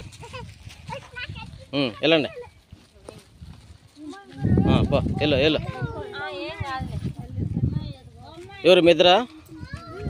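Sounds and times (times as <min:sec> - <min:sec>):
women and children talking: 0:00.0 - 0:10.0.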